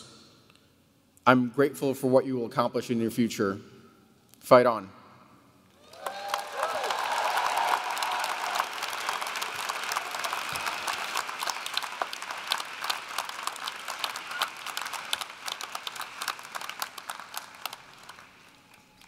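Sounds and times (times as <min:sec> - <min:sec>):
audience applause: 0:05.8 - 0:19.0
people cheering: 0:05.8 - 0:19.0.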